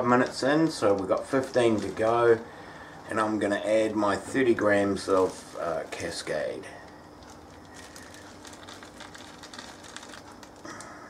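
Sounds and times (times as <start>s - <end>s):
liquid boiling in a kettle: 0.0s - 11.0s
plastic bag crackling: 0.0s - 11.0s.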